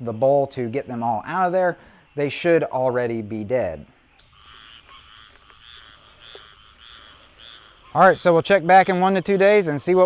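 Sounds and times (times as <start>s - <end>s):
frogs calling in chorus: 4.1s - 10.0s.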